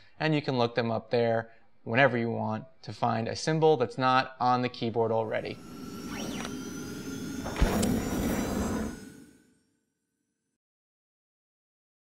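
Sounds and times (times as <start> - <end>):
sustained synth tones: 5.2 - 9.4.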